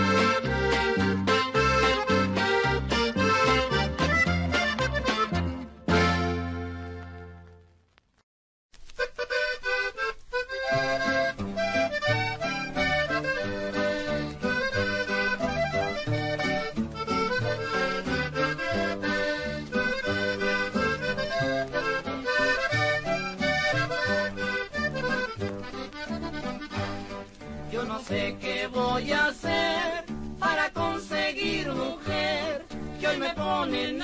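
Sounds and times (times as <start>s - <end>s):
accordion melody: 0.0s - 7.7s, 8.9s - 34.0s.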